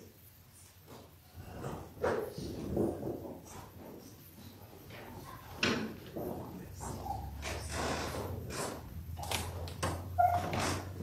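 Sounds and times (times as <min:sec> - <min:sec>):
people shuffling: 0:00.6 - 0:11.0
people breathing: 0:01.2 - 0:04.6.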